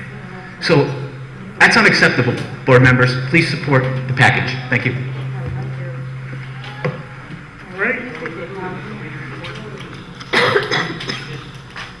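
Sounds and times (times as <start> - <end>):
person coughing loudly: 10.3 - 11.4.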